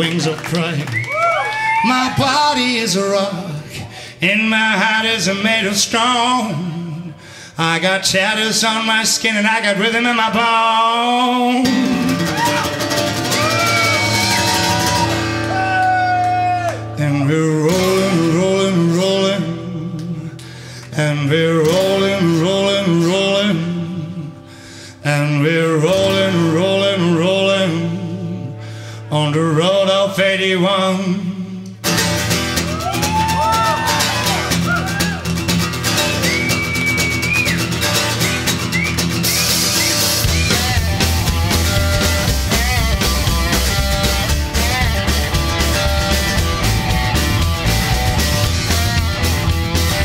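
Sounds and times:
upright bass: 0:00.0 - 0:50.0
strummed acoustic guitar: 0:02.2 - 0:15.6, 0:16.8 - 0:50.0
bending lead guitar notes: 0:11.6 - 0:20.4, 0:31.4 - 0:50.0
live rock band playing: 0:11.6 - 0:21.0, 0:31.7 - 0:50.0
drums with cymbals: 0:34.9 - 0:50.0.

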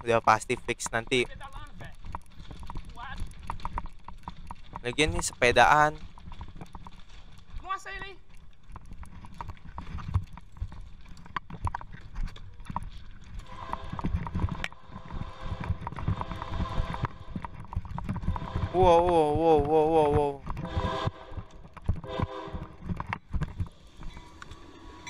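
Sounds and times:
bicycle rattling over sleepers: 0:00.0 - 0:25.0
steady droning tone: 0:13.4 - 0:19.8.

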